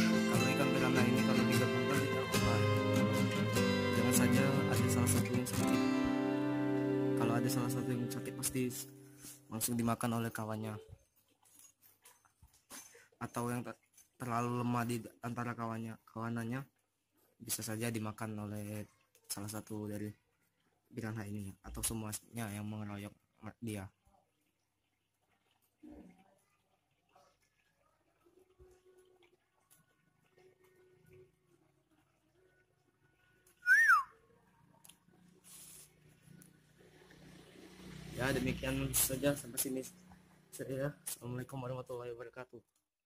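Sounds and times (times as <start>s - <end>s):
short whistle sliding down: 33.6s - 34.1s.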